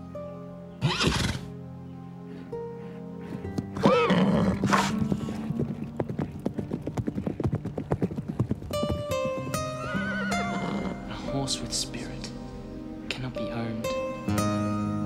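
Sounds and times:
background music: 0.0 - 15.0
horse whinnying: 0.8 - 1.5, 3.7 - 5.4, 9.6 - 11.1
hooves galloping on grass: 2.2 - 11.0.

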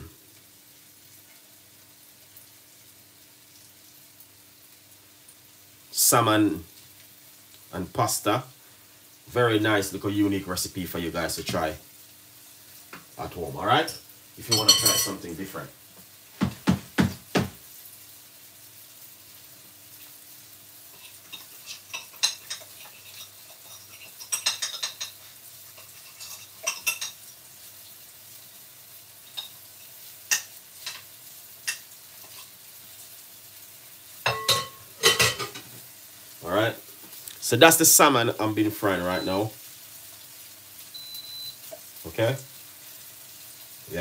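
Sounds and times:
fish sizzling in a pan: 0.0 - 44.0.

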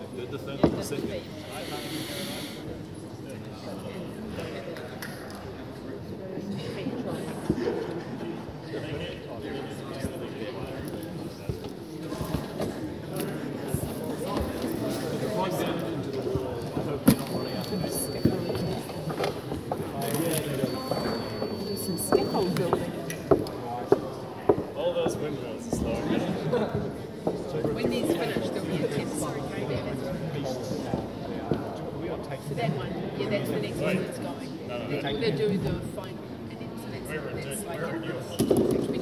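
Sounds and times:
voices chattering in a hall: 0.0 - 39.0.

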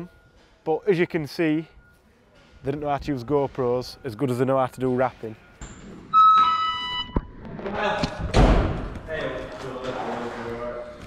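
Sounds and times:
two-note electronic beep: 6.1 - 7.2.

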